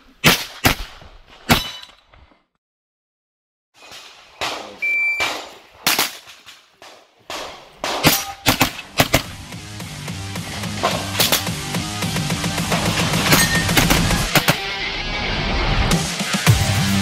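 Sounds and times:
carbine gunshots: 4.3 - 9.4, 12.7 - 14.8
shot timer beep: 4.8 - 5.3
music: 9.1 - 17.0.

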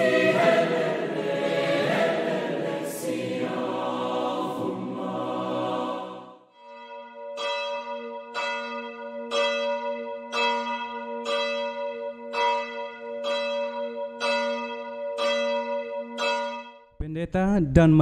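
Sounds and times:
church bell ringing: 0.0 - 3.7, 6.0 - 16.9.

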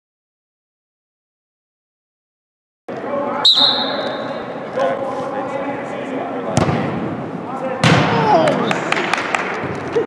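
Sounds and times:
players' voices and shouts: 2.9 - 8.8
soccer ball kicked hard: 6.6 - 7.0.

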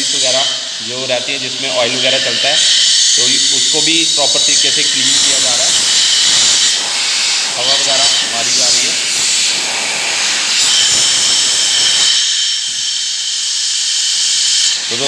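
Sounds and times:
compressed air hissing: 0.0 - 15.0.

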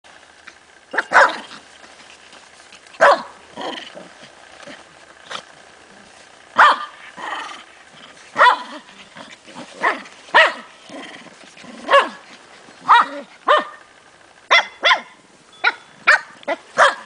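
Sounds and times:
dogs barking: 0.9 - 1.6, 3.0 - 3.7, 6.6 - 7.5, 8.3 - 8.9, 9.7 - 10.8, 11.8 - 13.9, 14.5 - 17.0.

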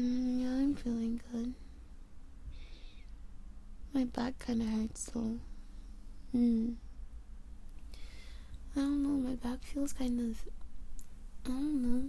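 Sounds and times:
low steady hum: 0.0 - 12.0
soft breathy exhale: 7.9 - 8.6.

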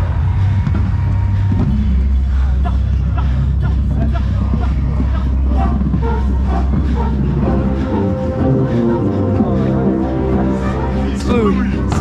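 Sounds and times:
drum corps music: 0.0 - 12.0
heavy low rumble: 0.0 - 12.0.

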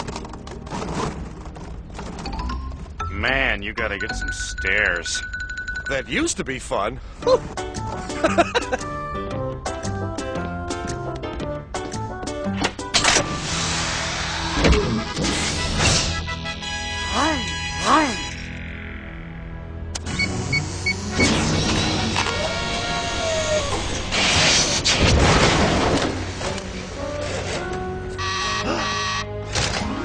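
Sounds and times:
background music: 0.0 - 23.5, 25.6 - 30.0
buzzing electronic tone: 28.2 - 29.3.

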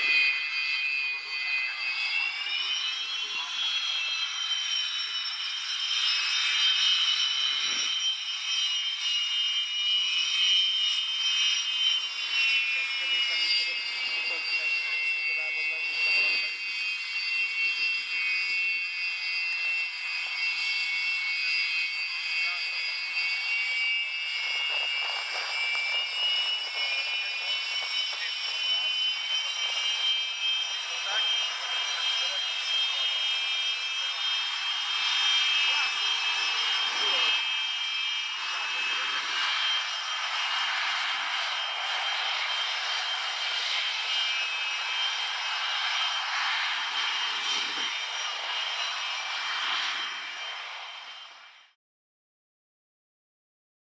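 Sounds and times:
jet engines rushing: 0.0 - 51.6
high turbine whine: 0.0 - 51.8.

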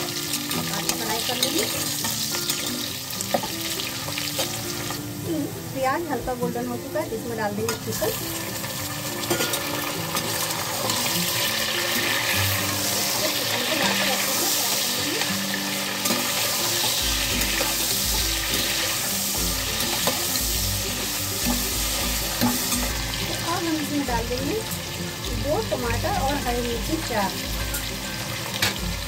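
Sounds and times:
metal spoon stirring in pot: 0.0 - 5.0, 8.0 - 14.8, 15.4 - 23.4
chicken and onions sizzling in oil: 0.0 - 29.0.

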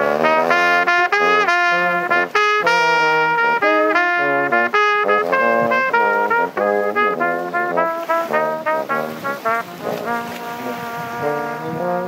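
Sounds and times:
french horn playing blues: 0.0 - 12.0
trumpet playing blues: 0.0 - 12.0.

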